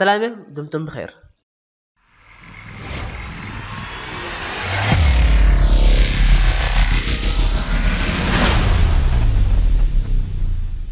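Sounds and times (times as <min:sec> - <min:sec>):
electronic music: 0:02.0 - 0:10.2
deep bass tone: 0:02.1 - 0:10.9
whoosh sound effect: 0:02.2 - 0:10.7.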